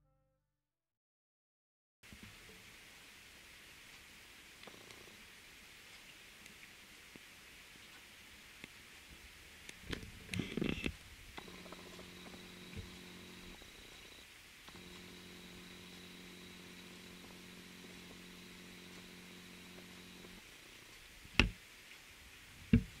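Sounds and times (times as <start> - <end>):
rain on foliage: 2.0 - 23.0
low mechanical hum: 9.8 - 23.0.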